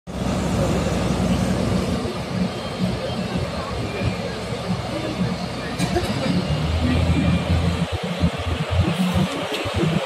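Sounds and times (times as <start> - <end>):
excavator low rumble: 0.1 - 10.0.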